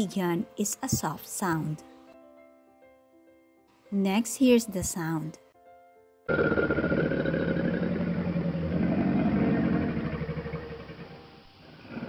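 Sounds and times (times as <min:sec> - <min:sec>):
crocodile growling: 0:06.3 - 0:12.0.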